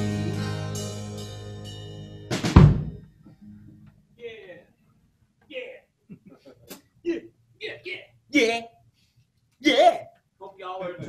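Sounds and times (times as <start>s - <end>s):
band final accent hits: 0.0s - 3.0s
bass drum thump: 2.3s - 3.1s.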